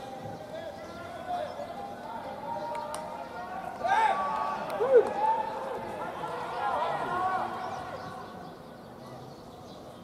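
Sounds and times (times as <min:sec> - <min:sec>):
distant crowd voices: 0:00.0 - 0:10.0.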